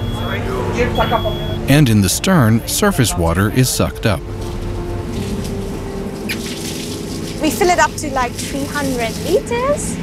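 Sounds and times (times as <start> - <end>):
steady machinery hum: 0.0 - 10.0
water running into plastic tank: 4.4 - 9.9.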